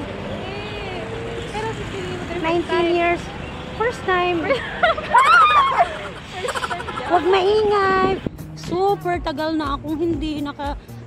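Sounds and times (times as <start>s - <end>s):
voices talking: 0.0s - 10.8s
road traffic rumble: 0.0s - 11.0s.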